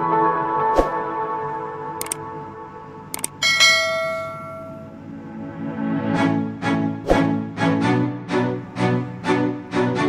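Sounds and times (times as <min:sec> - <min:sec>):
quiet background music: 0:00.0 - 0:10.0
mouse clicks: 0:02.0 - 0:02.2, 0:03.2 - 0:03.4
bright bell ding: 0:03.3 - 0:05.0.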